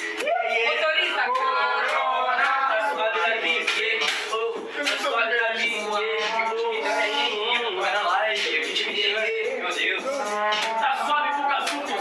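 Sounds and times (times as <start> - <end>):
man's voice through microphone: 2.2 - 12.0.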